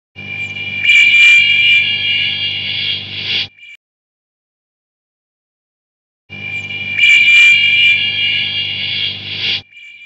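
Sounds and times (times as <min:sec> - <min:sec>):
electronic synth tone: 0:00.2 - 0:03.8, 0:06.3 - 0:10.0.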